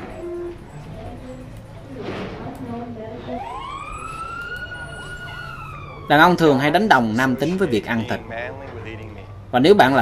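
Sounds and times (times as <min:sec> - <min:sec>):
fire engine siren wailing: 0:03.2 - 0:08.2.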